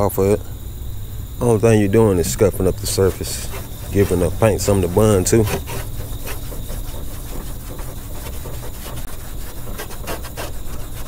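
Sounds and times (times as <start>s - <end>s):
scuff pad rubbing painted steel: 1.4s - 11.0s.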